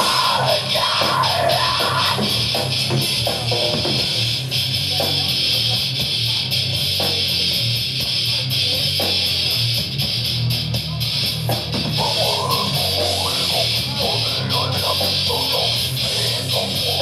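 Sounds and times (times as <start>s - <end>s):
bass guitar: 0.0s - 17.0s
distorted electric guitars: 0.0s - 17.0s
drums: 0.0s - 17.0s.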